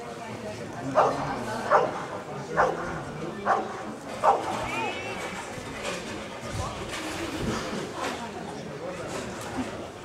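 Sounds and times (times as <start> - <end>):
dog barking: 1.0 - 1.9, 2.6 - 2.8, 3.5 - 4.4.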